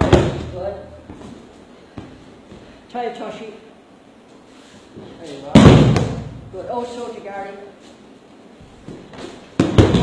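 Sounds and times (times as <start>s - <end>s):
feet shuffling on a mat: 1.0s - 2.9s, 4.3s - 5.5s, 7.7s - 10.0s.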